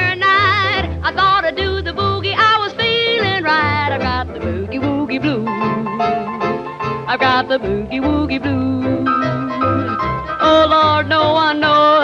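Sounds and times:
pulsing bass line: 0:00.1 - 0:11.6
lead melody with wide vibrato: 0:00.3 - 0:12.0.

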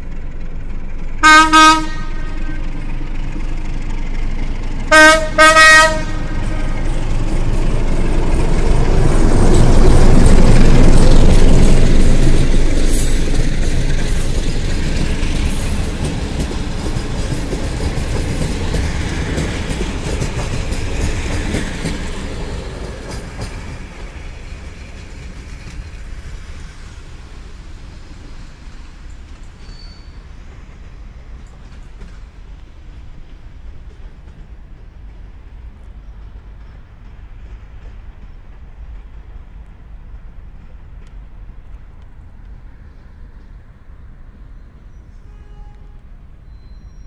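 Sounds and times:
diesel locomotive engine: 0:00.0 - 0:47.0
train coaches rolling on rails: 0:00.0 - 0:47.0.

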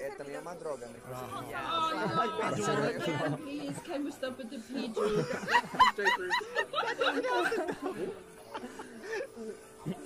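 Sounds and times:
voices talking over one another: 0:01.0 - 0:05.3
laughter: 0:05.0 - 0:10.0.

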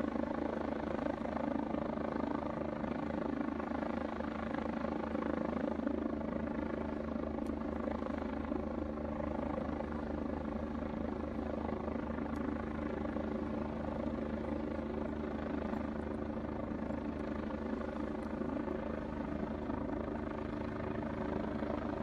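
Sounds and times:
helicopter engine drone: 0:00.0 - 0:22.0.

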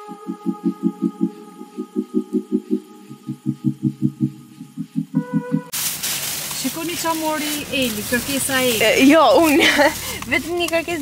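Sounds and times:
background music with pulsing beat: 0:00.0 - 0:05.8.

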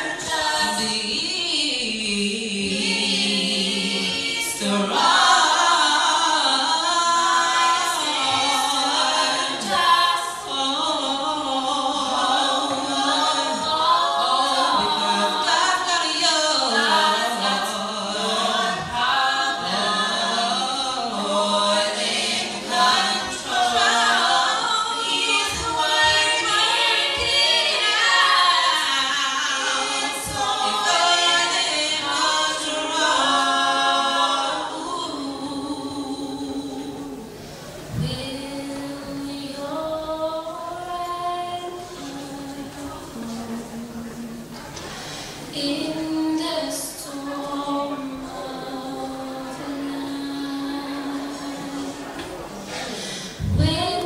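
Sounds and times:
women singing a cappella: 0:00.0 - 0:54.0.

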